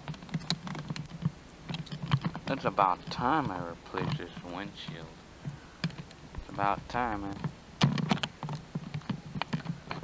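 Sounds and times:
handling clicks and taps: 0.0s - 10.0s.

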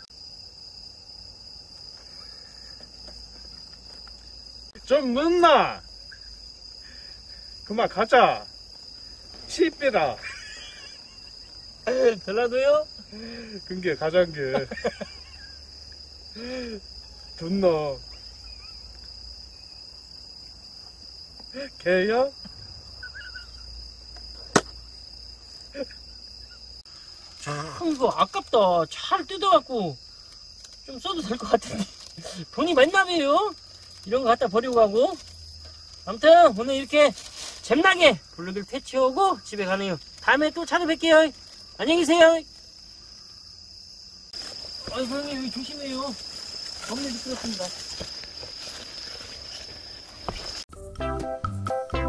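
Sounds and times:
night insects chirring: 0.0s - 51.0s.

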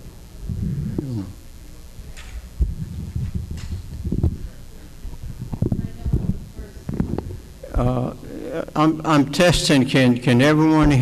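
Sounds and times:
low indistinct talking: 0.4s - 8.9s.

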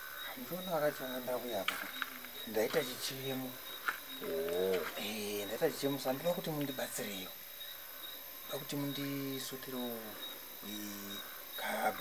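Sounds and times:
man making low coo-like sound: 4.2s - 5.0s, 10.6s - 11.2s.

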